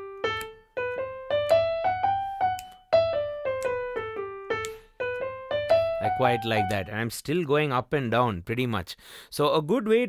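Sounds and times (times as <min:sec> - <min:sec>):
piano playing a scale: 0:00.0 - 0:07.1.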